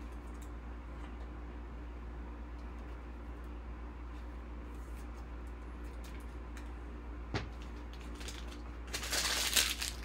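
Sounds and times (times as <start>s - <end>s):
plastic rustling and clatter: 7.6s - 10.0s.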